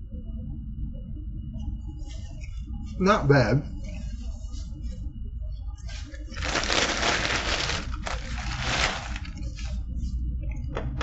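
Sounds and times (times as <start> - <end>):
paper wrapper crinkling: 6.2 - 9.8.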